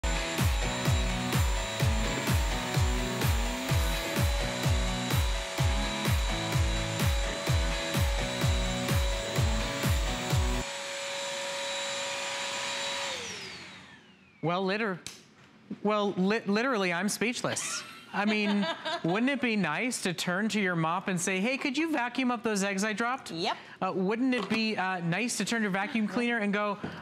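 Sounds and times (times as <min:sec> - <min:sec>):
background music with steady beat: 0:00.0 - 0:10.7
vacuum motor whine: 0:00.0 - 0:14.4.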